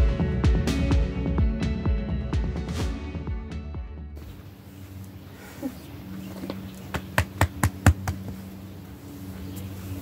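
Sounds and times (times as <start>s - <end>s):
hand patting goat: 6.3s - 8.5s.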